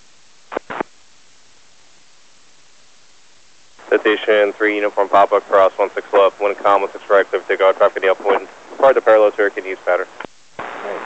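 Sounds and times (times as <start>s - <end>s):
radio static hiss: 0.0s - 11.0s
clipped radio transmission bursts: 0.5s - 0.9s, 3.8s - 11.0s.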